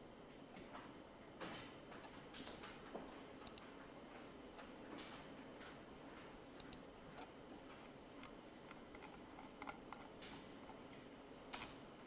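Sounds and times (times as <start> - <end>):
computer mouse clicks: 3.4 - 3.7, 6.6 - 7.3, 8.2 - 10.8.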